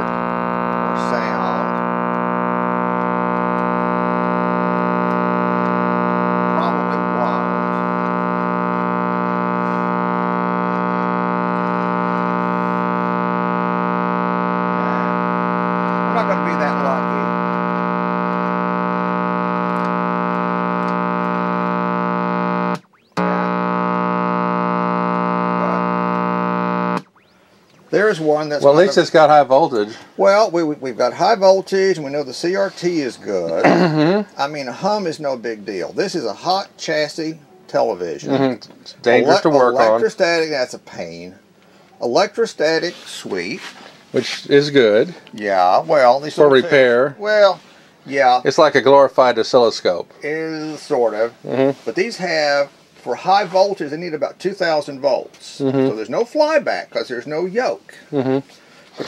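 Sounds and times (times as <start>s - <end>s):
television speaker hum: 0.0s - 41.4s, 44.2s - 47.3s, 48.2s - 51.9s, 55.4s - 56.6s, 57.3s - 58.6s.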